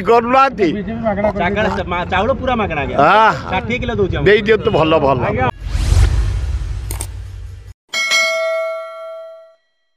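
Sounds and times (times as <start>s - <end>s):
low whooshing transition effect: 5.4s - 7.8s
bright bell ding: 7.9s - 9.9s.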